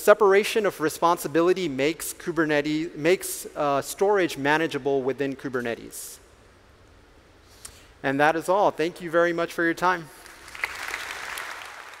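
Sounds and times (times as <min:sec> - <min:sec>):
audience applauding: 0:10.2 - 0:12.0.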